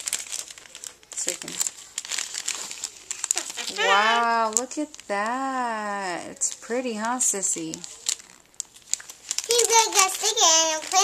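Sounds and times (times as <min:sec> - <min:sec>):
cellophane crinkling: 0:00.0 - 0:11.0
child's high voice: 0:03.5 - 0:04.4, 0:09.5 - 0:11.0.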